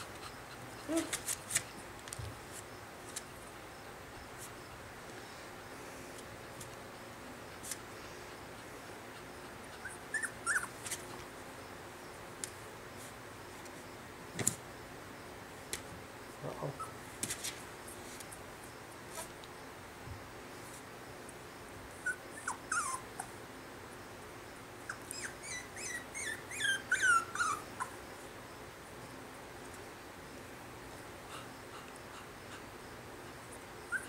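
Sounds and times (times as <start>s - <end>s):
puppy squeaking: 9.8s - 10.8s, 22.0s - 23.3s, 24.9s - 28.0s.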